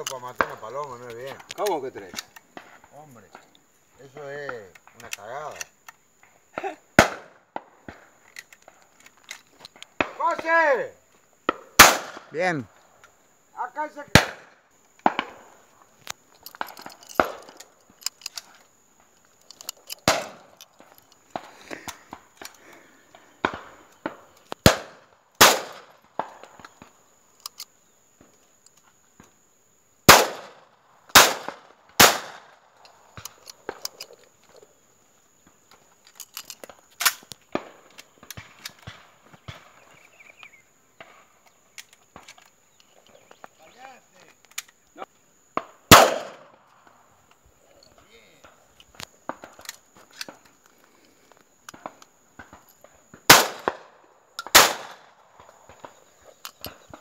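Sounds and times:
shotgun shots: 7.0 - 8.0, 11.5 - 12.5, 14.1 - 15.4, 20.0 - 20.5, 24.6 - 26.4, 30.1 - 32.6, 45.6 - 46.6, 53.3 - 55.1.

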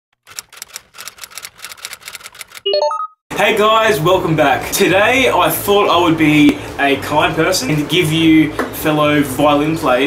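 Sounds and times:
typewriter key clacks: 0.2 - 2.6.

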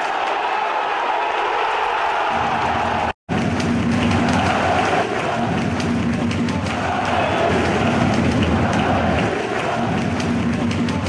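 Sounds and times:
crowd cheering and clapping: 0.0 - 11.0.

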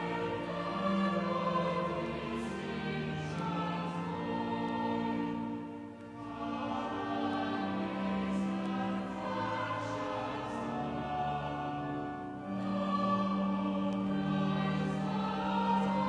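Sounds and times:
choir singing: 0.0 - 16.0.

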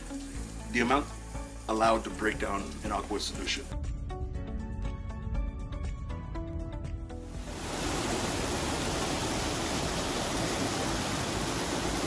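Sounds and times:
water pouring into a channel: 7.5 - 12.0.

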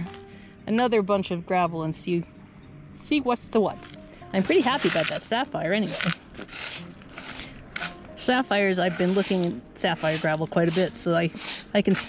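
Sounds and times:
pebbles scraping on mesh screen: 4.4 - 12.0.

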